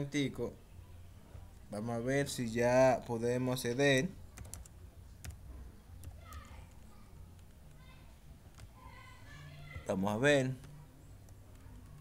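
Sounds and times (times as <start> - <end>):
laptop keyboard typing: 4.3 - 5.4, 6.0 - 7.8, 8.5 - 8.8, 10.6 - 12.0.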